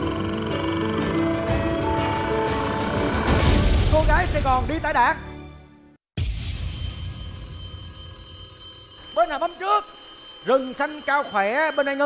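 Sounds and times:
game show buzzer ringing: 0:00.0 - 0:03.3, 0:06.7 - 0:12.0.

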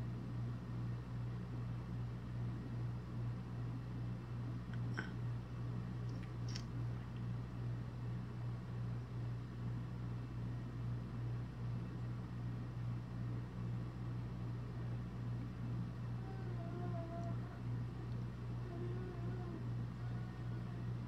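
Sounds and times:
low mechanical hum: 0:00.0 - 0:21.0.

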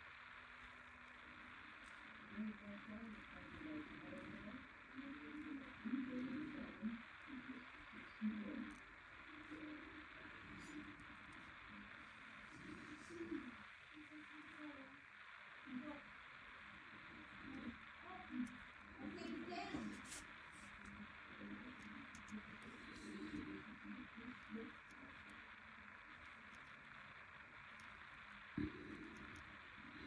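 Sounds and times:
muffled television voices: 0:00.0 - 0:30.0
steady hiss: 0:00.0 - 0:30.0.

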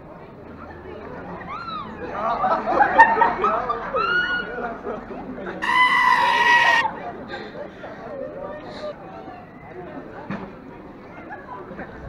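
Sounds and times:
faint street chatter: 0:00.0 - 0:12.0
goat bleating loudly: 0:05.6 - 0:06.9.

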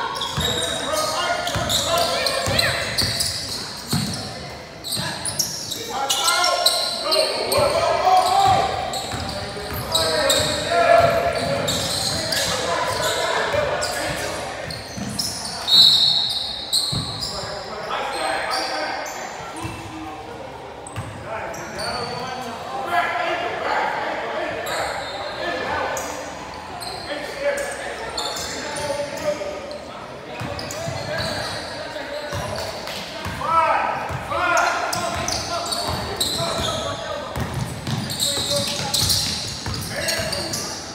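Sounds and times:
players calling and chattering: 0:00.0 - 0:40.9.

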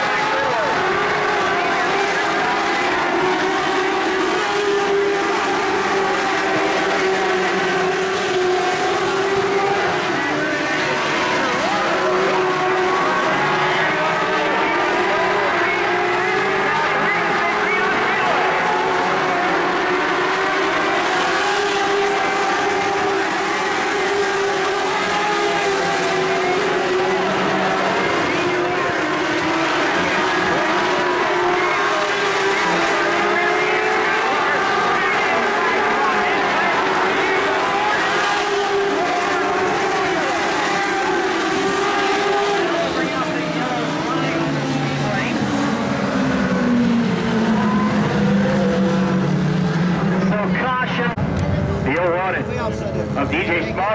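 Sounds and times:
race car engines droning: 0:00.0 - 0:53.9.

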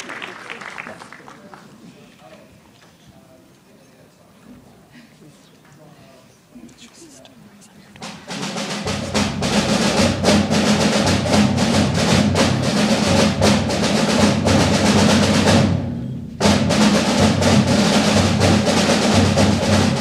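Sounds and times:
concert band playing: 0:08.0 - 0:20.0
drums and percussion: 0:08.0 - 0:20.0.

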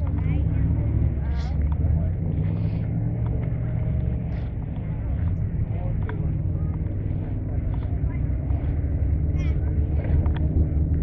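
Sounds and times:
car engine idling: 0:00.0 - 0:11.0
people talking: 0:00.0 - 0:11.0.

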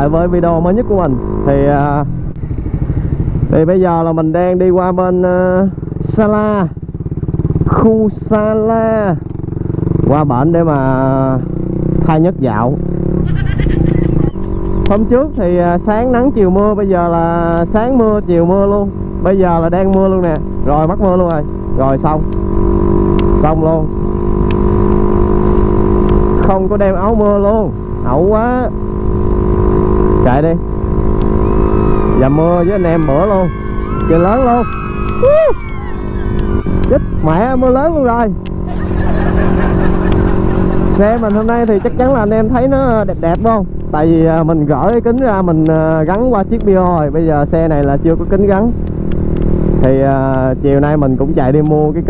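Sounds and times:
motorcycle engine accelerating: 0:00.0 - 0:52.0.

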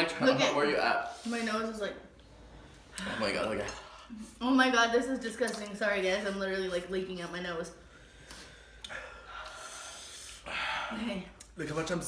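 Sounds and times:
person breathing hard: 0:07.9 - 0:11.2.

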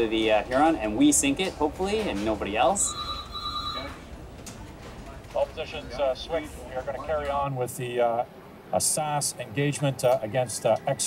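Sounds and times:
electronic ringing tone: 0:02.8 - 0:04.0.

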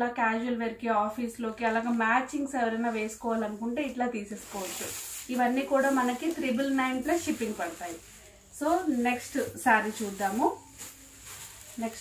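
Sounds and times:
woman speaking: 0:00.0 - 0:10.7, 0:11.8 - 0:12.0
fabric rustling: 0:01.4 - 0:12.0.

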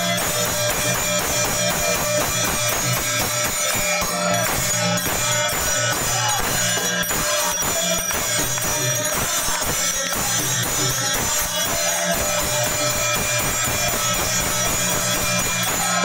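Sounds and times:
hand clapping: 0:00.0 - 0:16.0
metallic hand cymbal strikes: 0:00.0 - 0:16.0
group singing: 0:03.8 - 0:16.0.

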